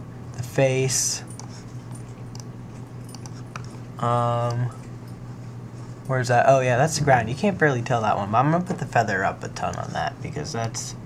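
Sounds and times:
low electrical hum: 0.0s - 11.0s
keyboard typing: 1.2s - 4.6s
computer mouse clicks: 1.3s - 2.5s, 3.1s - 3.8s.

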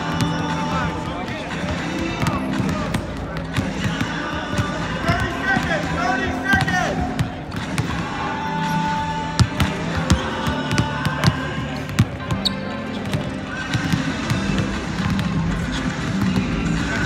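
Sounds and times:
basketballs bouncing on hardwood: 0.0s - 8.1s, 9.4s - 17.0s
background music: 0.0s - 17.0s.

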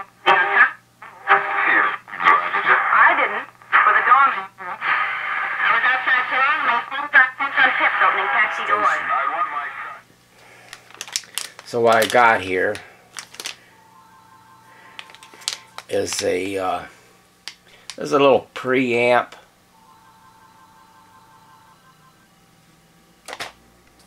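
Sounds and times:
voices over radio speaker: 0.0s - 10.1s, 11.7s - 12.8s, 14.7s - 17.0s
steady low hum: 0.0s - 24.0s.

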